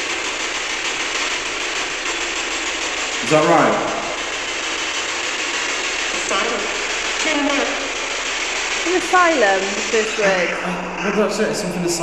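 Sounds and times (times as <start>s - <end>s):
chopped radio static hiss: 0.0s - 12.0s.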